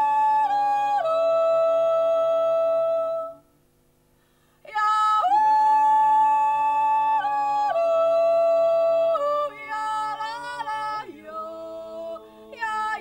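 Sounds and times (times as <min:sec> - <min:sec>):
group yodeling in harmony: 0:00.0 - 0:03.4, 0:04.7 - 0:13.0.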